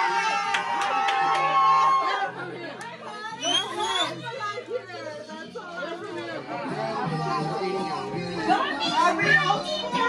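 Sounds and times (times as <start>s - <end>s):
people talking and laughing: 0.0s - 10.0s.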